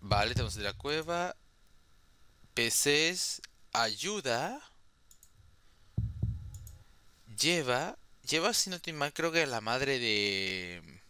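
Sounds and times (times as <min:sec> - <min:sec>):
low thump: 0:00.1 - 0:00.7, 0:06.0 - 0:06.6
computer mouse clicks: 0:05.1 - 0:05.4, 0:06.4 - 0:06.8
sharp knocks: 0:06.0 - 0:06.6.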